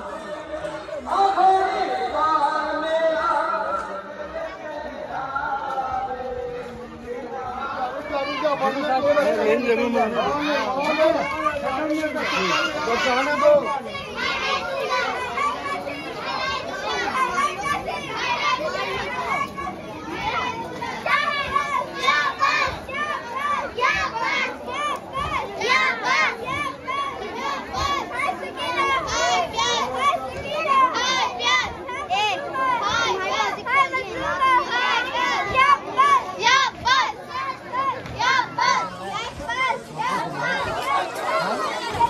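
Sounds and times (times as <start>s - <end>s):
men talking: 7.5s - 14.0s, 38.4s - 42.0s
children chanting: 10.6s - 42.0s.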